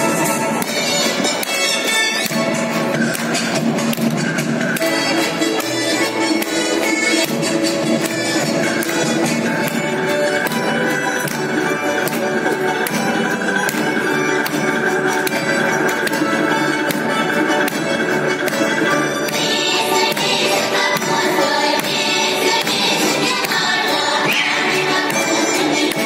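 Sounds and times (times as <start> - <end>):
folk dance music over loudspeakers: 0.0 - 26.0.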